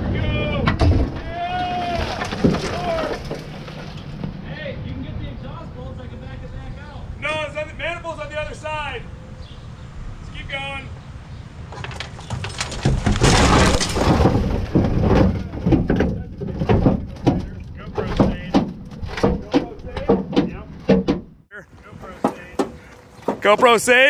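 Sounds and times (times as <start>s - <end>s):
metal body scraping: 0.0s - 4.5s, 11.7s - 23.9s
knocks and clunks of sheet metal: 11.8s - 21.3s.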